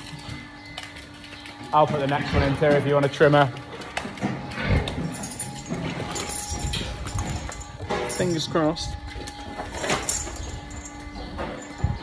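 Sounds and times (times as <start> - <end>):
cow hooves clopping on wet concrete: 0.0 - 10.1.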